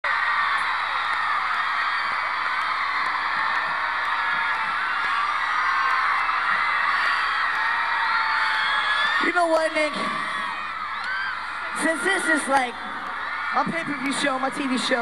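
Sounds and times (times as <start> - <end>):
concert crowd screaming and cheering: 0.0 - 15.0.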